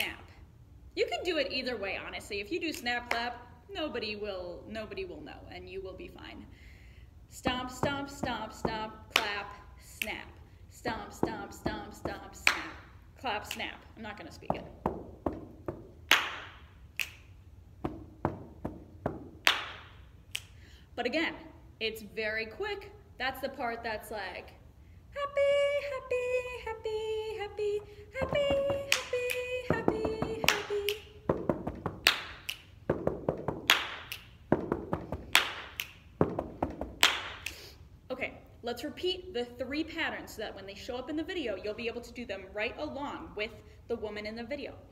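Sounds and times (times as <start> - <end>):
hand claps: 12.4 - 12.8, 15.3 - 20.5, 28.2 - 37.6
foot stomps on carpet: 14.5 - 16.0, 17.8 - 19.5, 29.7 - 32.1, 34.5 - 35.4, 36.2 - 37.0
finger snap: 16.1 - 17.4, 19.4 - 20.6, 28.2 - 31.2, 32.0 - 32.8, 33.7 - 34.4, 35.3 - 36.2, 37.0 - 37.8.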